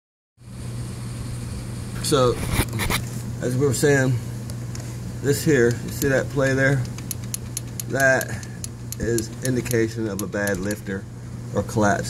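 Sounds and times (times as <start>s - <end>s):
low motor hum: 0.4s - 12.0s.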